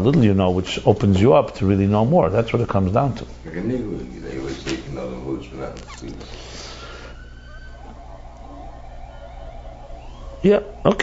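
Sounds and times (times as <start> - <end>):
man speaking: 10.4 - 11.0.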